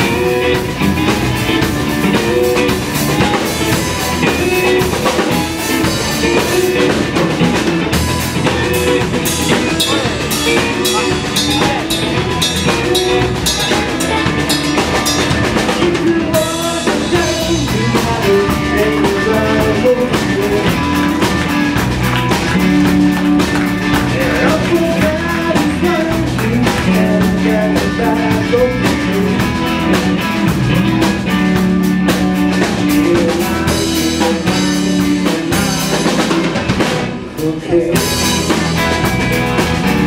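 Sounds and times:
drum kit with cymbals: 0:00.0 - 0:40.0
electric guitar melody: 0:00.0 - 0:40.0.

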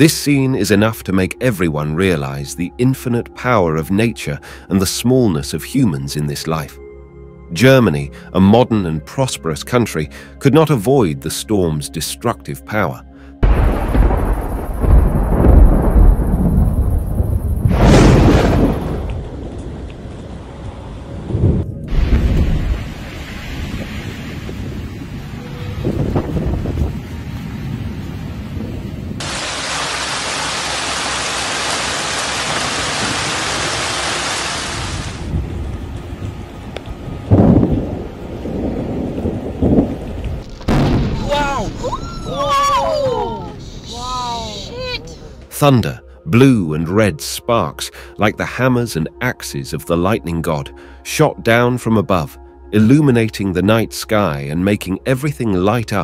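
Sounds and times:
thunder rumbles: 0:13.4 - 0:29.4, 0:34.8 - 0:43.2
storm wind: 0:13.4 - 0:29.6, 0:34.6 - 0:45.4
heavy rain hiss: 0:21.9 - 0:28.4, 0:29.2 - 0:41.7.

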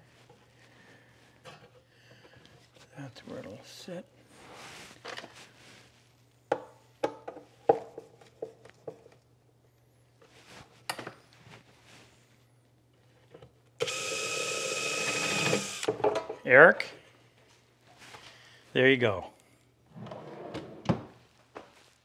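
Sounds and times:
power drill running: 0:13.8 - 0:16.0.

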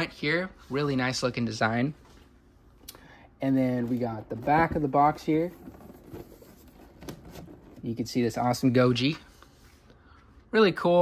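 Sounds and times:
cardboard box scraping: 0:04.2 - 0:07.8.

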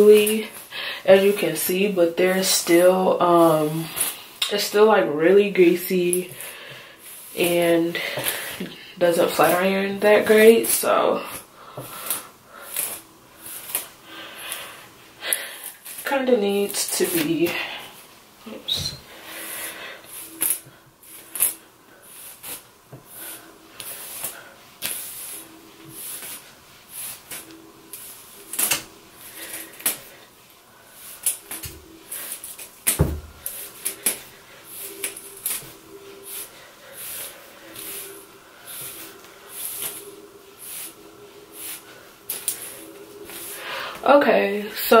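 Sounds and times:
hairbrush swishing through wig: 0:05.7 - 0:14.8, 0:15.6 - 0:30.2, 0:30.8 - 0:45.0.

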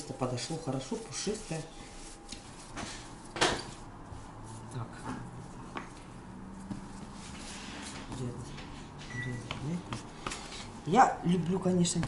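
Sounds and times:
hands kneading dough: 0:00.0 - 0:08.8, 0:09.4 - 0:10.8.

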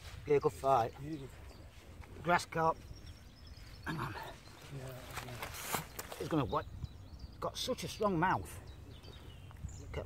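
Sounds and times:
brief rustle: 0:05.0 - 0:06.3.

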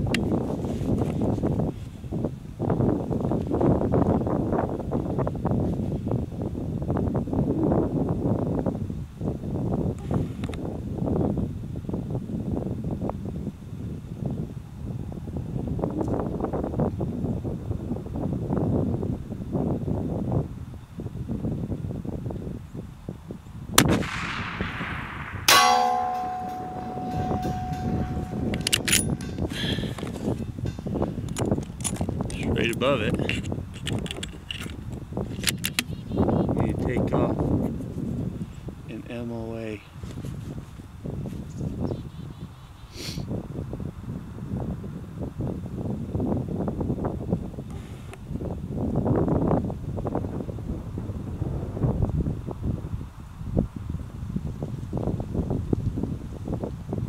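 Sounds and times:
wind buffeting microphone: 0:00.0 - 0:57.0
rifle shot: 0:23.8 - 0:29.1
bullet striking steel plate: 0:23.8 - 0:29.6.

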